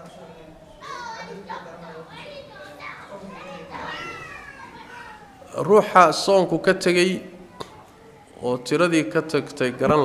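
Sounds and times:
faint high-pitched voices: 0.0 - 5.8, 7.3 - 8.7.

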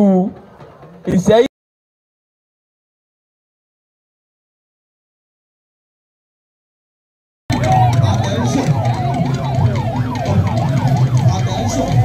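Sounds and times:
electronic siren yelping: 7.5 - 12.0.

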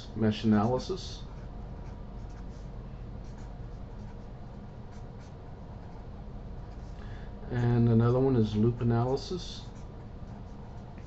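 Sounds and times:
low background hum: 0.0 - 11.0
marker pen scratching on paper: 0.5 - 7.0, 8.6 - 11.0.

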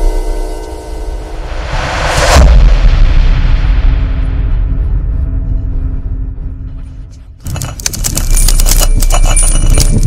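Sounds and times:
deep rumble: 0.6 - 10.0
deep boom: 1.0 - 7.4
rising whoosh: 1.2 - 4.8.

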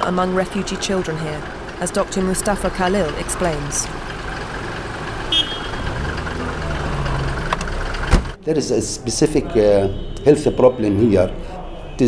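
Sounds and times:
low engine hum: 0.0 - 8.4
street traffic rumble: 0.0 - 12.0.

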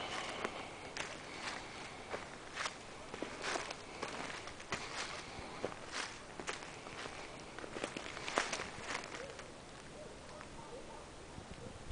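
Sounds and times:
footsteps on dry leaves: 0.0 - 9.9.

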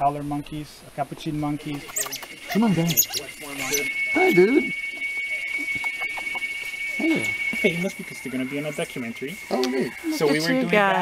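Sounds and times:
steady high-pitched tone: 1.1 - 11.0.

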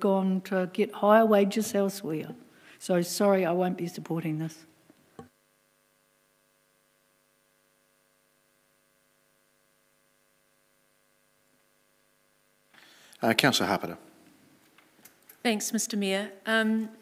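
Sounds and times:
faint electrical mains hum: 0.0 - 17.0.

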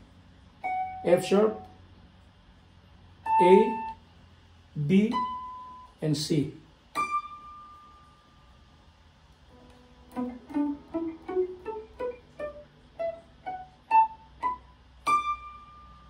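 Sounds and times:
guitar picking single notes: 3.2 - 4.0, 4.8 - 6.0, 6.9 - 8.2, 9.5 - 16.0.

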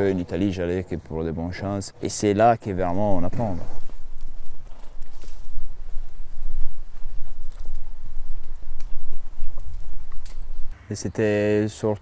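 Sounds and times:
horse hooves on gravel: 2.8 - 10.8.

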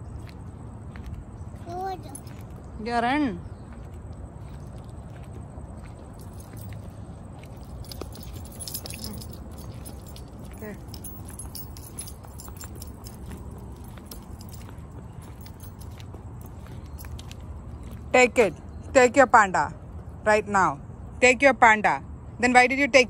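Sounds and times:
steady low rumble: 2.2 - 18.4
keys jingling: 6.0 - 17.3.

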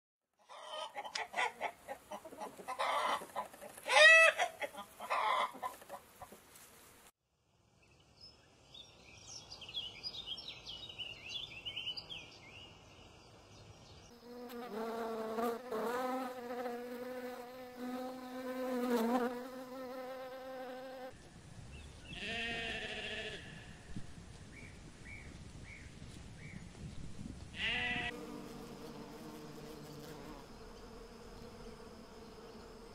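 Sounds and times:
bee buzzing: 14.1 - 21.1, 28.0 - 32.9
sheep bleating: 22.2 - 23.6, 27.6 - 28.2.

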